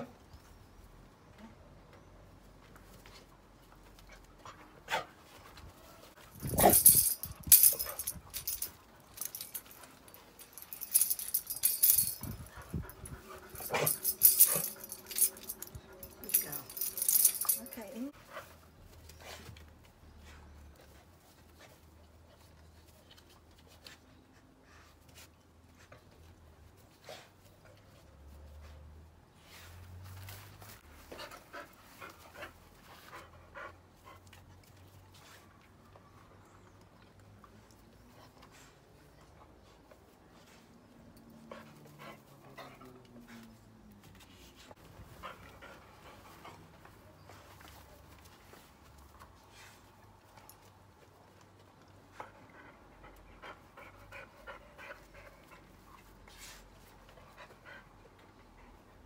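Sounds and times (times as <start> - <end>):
tambourine jingling: 6.4 - 17.8
dog panting: 52.0 - 59.0.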